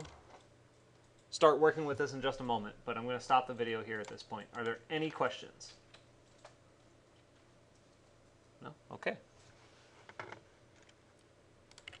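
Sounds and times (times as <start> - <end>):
keyboard and mouse clicks: 5.9 - 6.6, 11.7 - 12.0.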